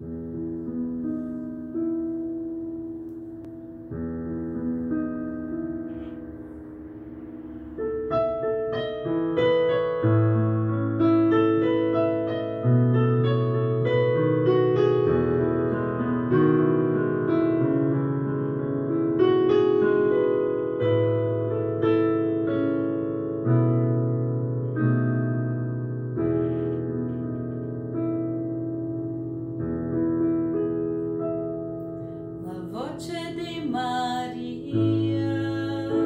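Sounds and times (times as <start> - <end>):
acoustic piano playing: 0.0 - 36.0.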